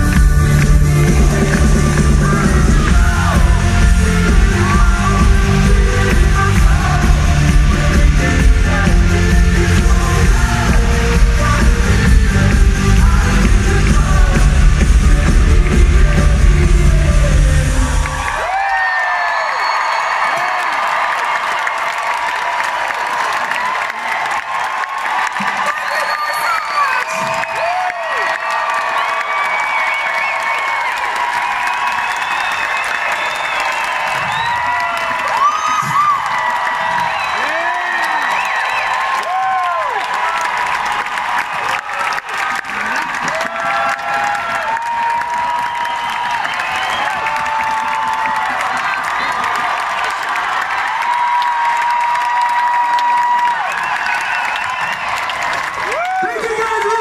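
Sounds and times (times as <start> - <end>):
live band music with heavy bass: 0.0 - 18.3
crowd cheering and applauding: 0.0 - 57.0.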